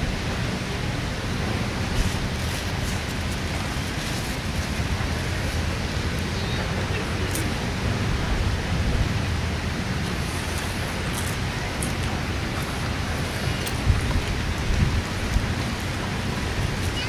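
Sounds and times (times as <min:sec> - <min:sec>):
wind blowing across microphone: 0:00.0 - 0:17.0.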